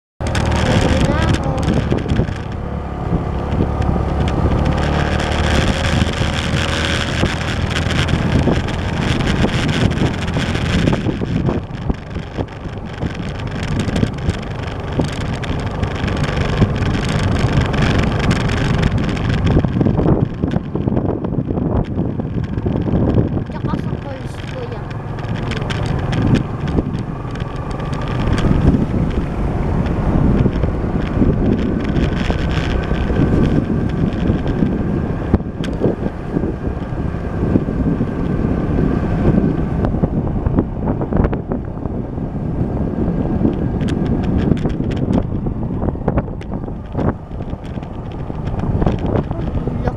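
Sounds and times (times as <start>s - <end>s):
vehicle engine running: 0.2s - 49.9s
wind buffeting microphone: 0.2s - 49.9s.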